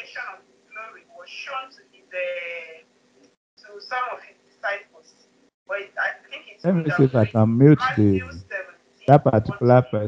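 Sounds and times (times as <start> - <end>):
speech-like sound: 6.7 - 8.5, 9.1 - 10.0.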